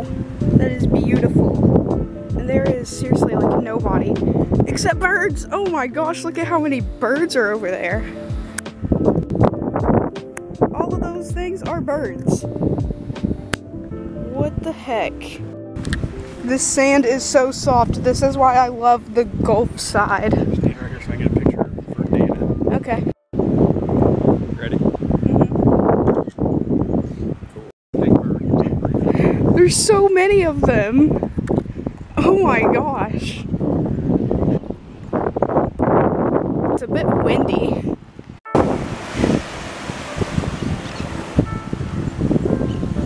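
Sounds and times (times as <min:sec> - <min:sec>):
wind buffeting microphone: 0:00.0 - 0:43.0
small waves washing on sand: 0:38.6 - 0:42.0.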